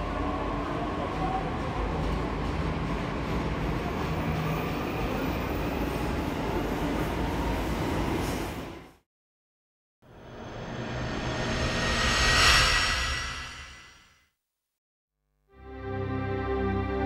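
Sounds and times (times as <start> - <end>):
train running past with rumble: 0.0 - 8.7, 10.1 - 14.1.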